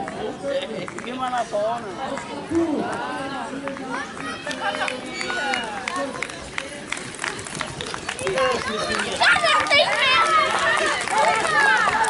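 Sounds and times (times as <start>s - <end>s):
children's voices: 2.3s - 6.2s, 7.3s - 12.0s
spectators cheering: 8.1s - 12.0s.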